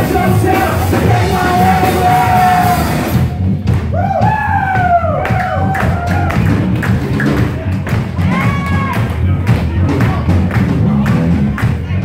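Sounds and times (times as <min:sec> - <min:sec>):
bass guitar: 0:00.0 - 0:12.0
drums: 0:00.0 - 0:12.0
rock band playing live: 0:00.0 - 0:12.0.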